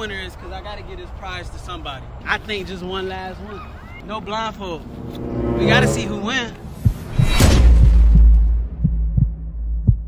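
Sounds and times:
low drone: 4.5 - 7.8
deep bass boom: 5.1 - 10.0
heartbeat thumps: 6.6 - 10.0.

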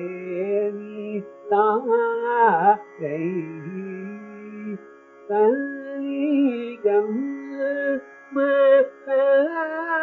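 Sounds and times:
man singing: 0.0 - 10.0.

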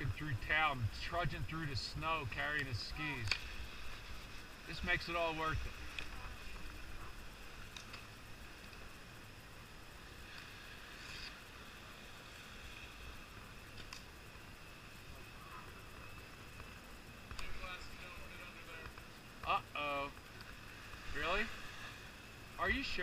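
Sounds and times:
low background hum: 0.0 - 23.0.

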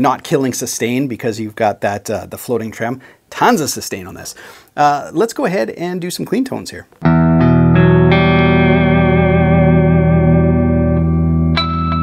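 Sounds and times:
clean electric guitar notes: 7.0 - 12.0.

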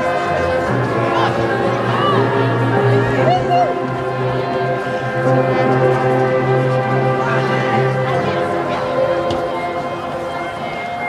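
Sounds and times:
marching band sustained chord: 0.0 - 11.0.

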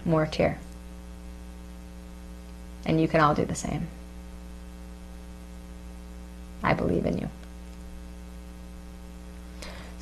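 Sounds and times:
woman speaking: 0.0 - 0.6, 2.8 - 4.0, 6.6 - 7.4
electrical hum: 0.0 - 10.0.

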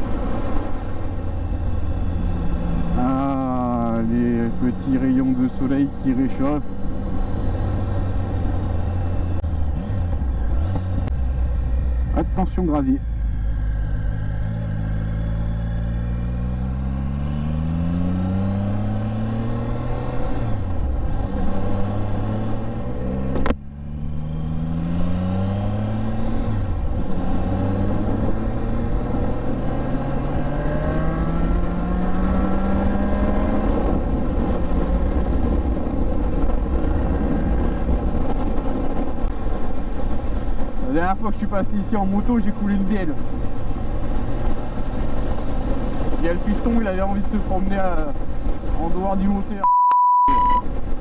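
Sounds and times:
motorcycle engine accelerating: 0.0 - 40.9, 41.5 - 49.4.

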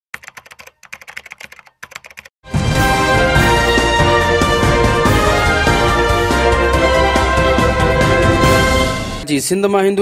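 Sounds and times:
rapid keyboard typing: 0.1 - 2.3.

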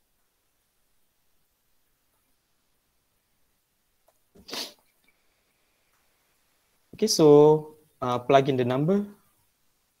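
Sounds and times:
person sneezing: 4.4 - 4.9.

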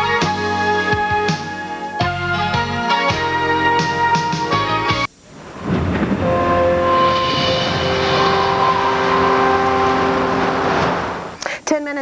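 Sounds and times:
loud steady noise: 5.1 - 11.5
theme music held chord: 5.6 - 11.4.

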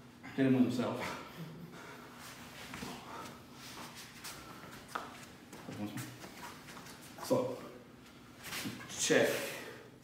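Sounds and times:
low room noise: 0.0 - 10.0.

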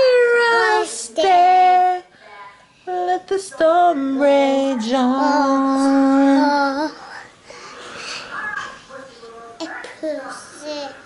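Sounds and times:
girl singing unaccompanied: 0.0 - 2.1, 2.8 - 7.0.

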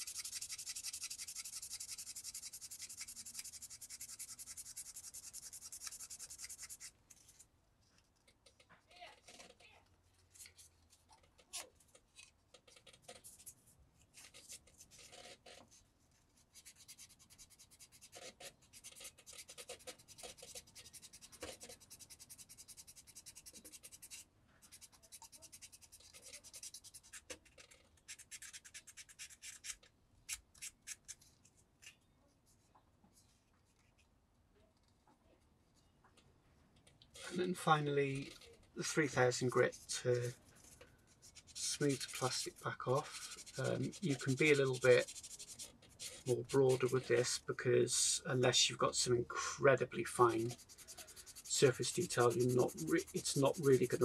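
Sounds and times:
sanding stick scratching plastic: 0.0 - 7.4, 12.6 - 15.7, 16.4 - 31.2, 37.2 - 47.4, 49.9 - 54.0.

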